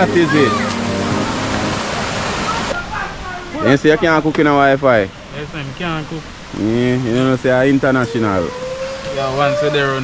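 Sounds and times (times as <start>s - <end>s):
water rushing over cascade: 0.0s - 10.0s.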